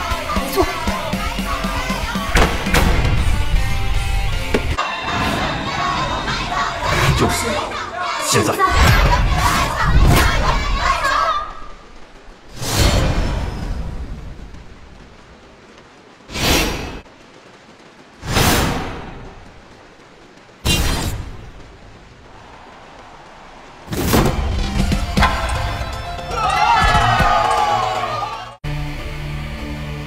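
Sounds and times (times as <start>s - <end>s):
crowd cheering: 4.5s - 11.8s, 22.3s - 28.6s.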